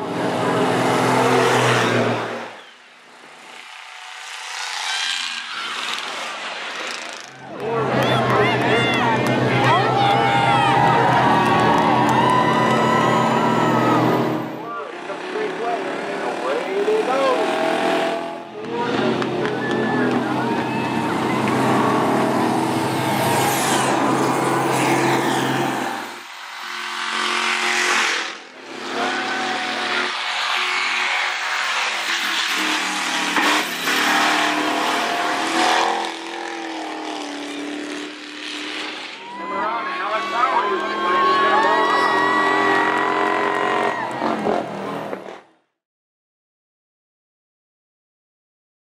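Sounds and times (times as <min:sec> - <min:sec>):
vehicle engines revving: 0:00.0 - 0:45.5
crowd shouting: 0:07.3 - 0:14.9, 0:15.5 - 0:26.2, 0:28.8 - 0:31.4, 0:39.2 - 0:44.7.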